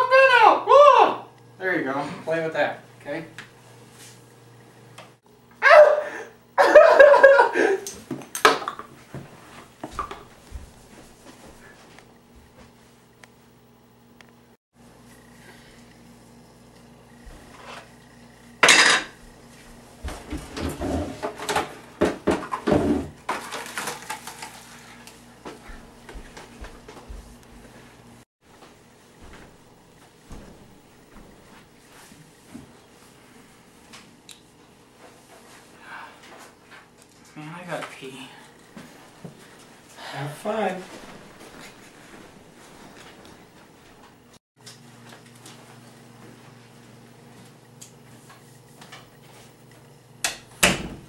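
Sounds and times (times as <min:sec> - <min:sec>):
dog barking: 0:05.7 - 0:06.1
dishes and pots clanking: 0:18.6 - 0:19.2
kitchenware clattering: 0:18.6 - 0:19.2.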